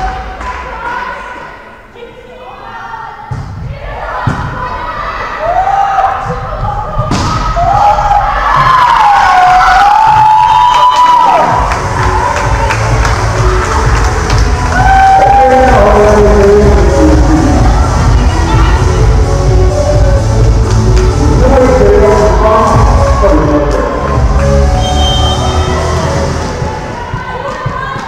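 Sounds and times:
players shouting and cheering: 2.7s - 28.0s
thud: 3.3s - 4.6s, 6.9s - 7.8s
loud bass-heavy music: 9.0s - 27.4s.

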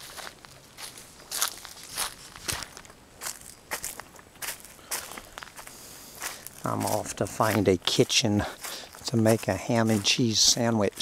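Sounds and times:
footsteps on road: 0.0s - 11.0s.

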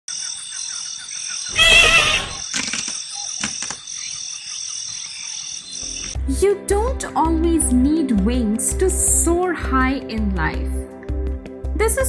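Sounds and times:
steady high insect buzz: 0.5s - 6.2s
loud wavering animal call: 1.5s - 2.4s.

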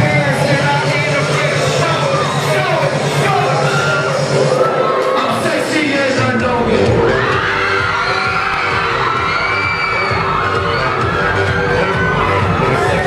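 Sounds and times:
crowd screaming and cheering: 0.0s - 13.0s
live music with steady low beat: 0.0s - 13.0s.

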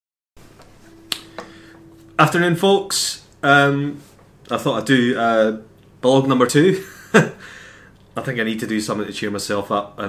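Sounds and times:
faint steady tone: 0.6s - 9.0s.

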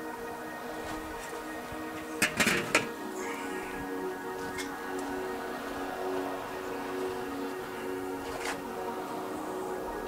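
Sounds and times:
background music: 0.0s - 10.0s
metal grill lid clanking: 2.2s - 3.0s.

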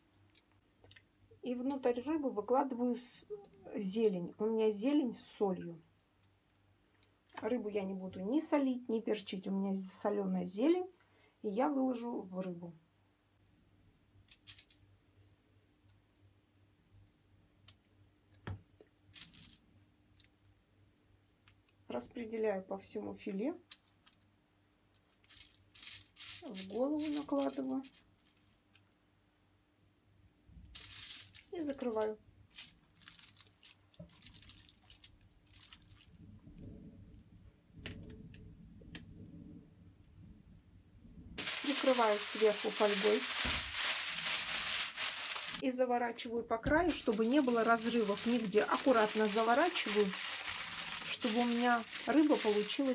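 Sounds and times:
foil crinkling and clicks: 25.0s - 28.9s, 30.8s - 36.2s, 41.4s - 45.6s, 46.8s - 52.9s.

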